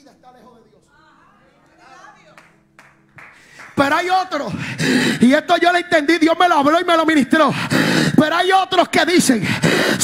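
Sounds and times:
hand claps: 2.4 - 3.9.

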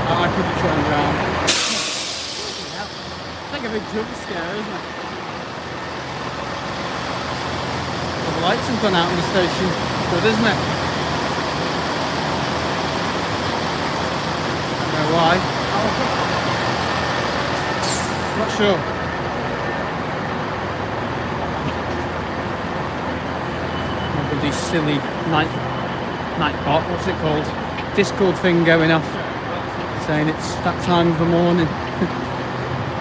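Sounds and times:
diesel train engine rumbling: 0.0 - 33.0.

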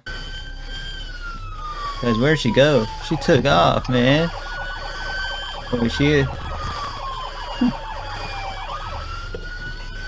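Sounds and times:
police siren wailing: 0.0 - 10.0
low steady rumble: 4.3 - 7.5.

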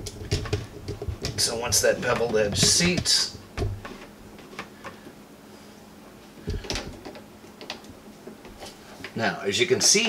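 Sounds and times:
plastic pipes clicking and knocking: 0.0 - 5.0, 6.4 - 8.7.

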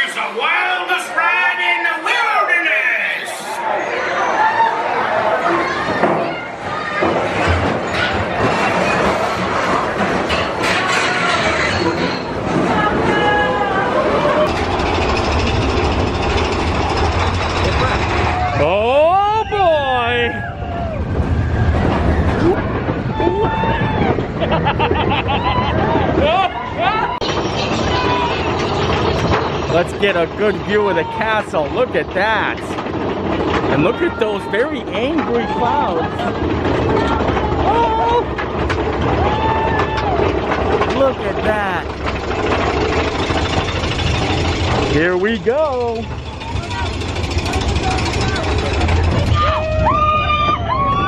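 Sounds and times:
roller coaster rumble and clatter: 0.0 - 51.0.

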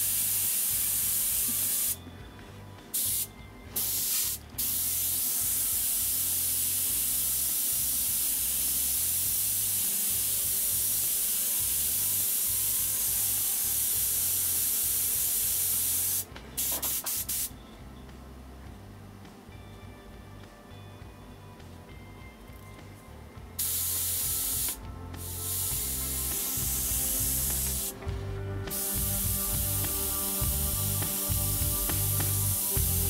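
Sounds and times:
airbrush hissing: 0.0 - 2.0, 3.0 - 17.5, 23.6 - 28.0, 28.7 - 33.0.

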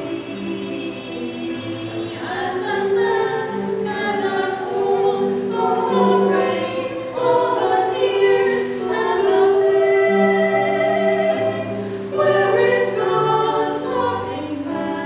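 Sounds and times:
women singing together: 0.0 - 15.0.

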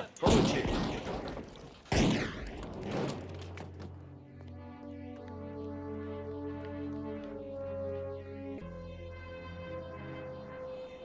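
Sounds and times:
loud gunshot: 0.3 - 3.3.

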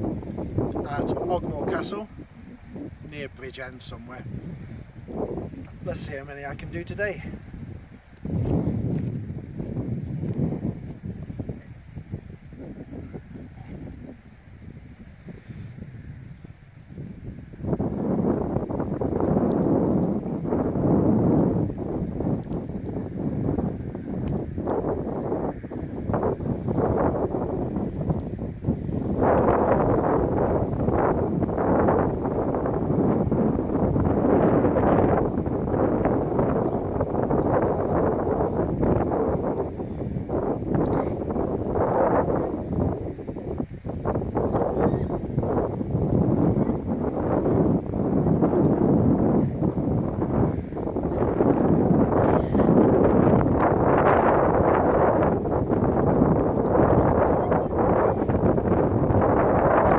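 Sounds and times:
wind blowing across microphone: 0.0 - 59.9.

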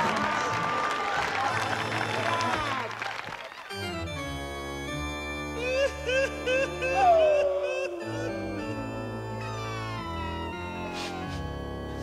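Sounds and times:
live band music: 6.7 - 11.8.

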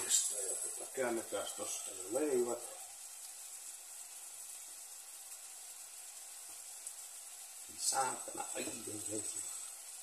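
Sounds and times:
bread sizzling in oil: 0.0 - 10.0.

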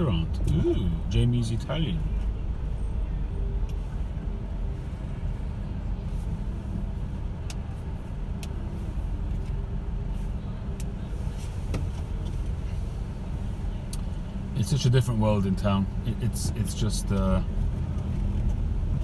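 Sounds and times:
car engine rumble from inside: 0.0 - 19.0.

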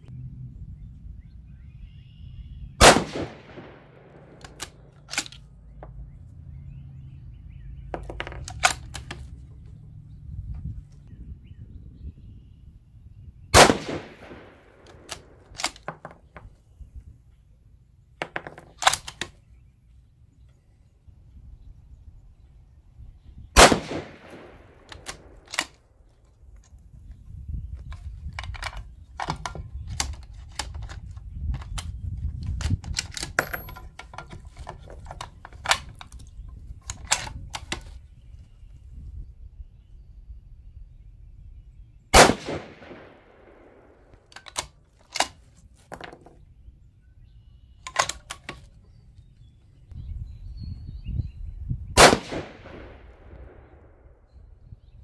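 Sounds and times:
rifle shots echoing: 2.8 - 5.4, 13.5 - 15.8, 23.6 - 25.8, 42.1 - 45.3, 52.0 - 54.0
metallic rifle handling clicks: 2.9 - 5.9, 8.0 - 9.7, 13.8 - 16.5, 18.2 - 19.4, 23.6 - 26.8, 27.8 - 38.0, 44.1 - 46.4, 47.7 - 49.5.

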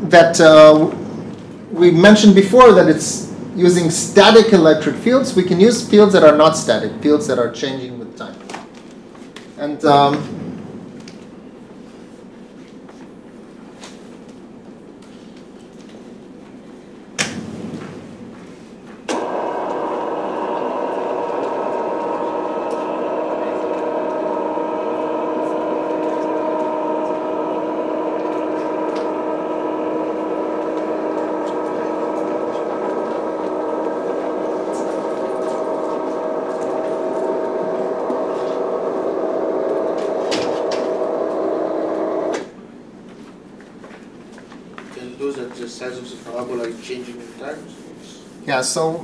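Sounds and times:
electric motor humming: 19.2 - 42.5.

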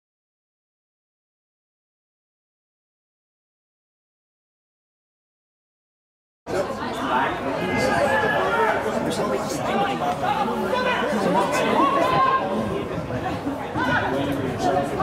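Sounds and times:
spectator chatter: 6.5 - 15.0.

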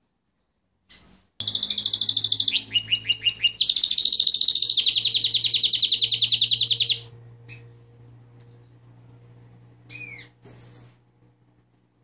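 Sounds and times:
canary singing rapid trills: 0.9 - 7.8, 9.9 - 11.0.

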